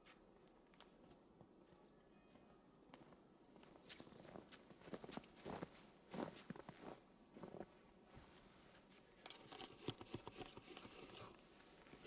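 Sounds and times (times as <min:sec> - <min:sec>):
footsteps in snow: 0:02.9 - 0:08.4.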